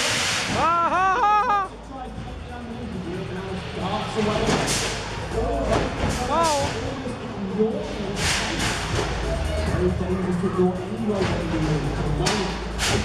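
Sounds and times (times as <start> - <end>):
music: 0.0 - 13.0
noisy arena background: 0.0 - 13.0.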